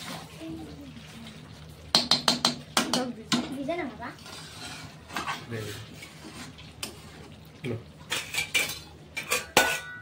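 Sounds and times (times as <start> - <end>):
metal spatula scraping a metal pan: 4.1 - 7.2, 8.1 - 10.0
thick curry being stirred: 4.1 - 10.0.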